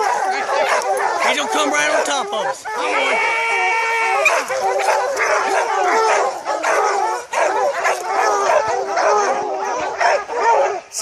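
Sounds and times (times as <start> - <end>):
hounds barking and baying: 0.0 - 11.0.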